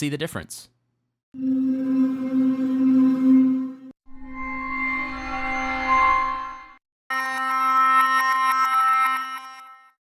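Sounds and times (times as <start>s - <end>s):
sustained synth tone: 1.4s - 6.8s.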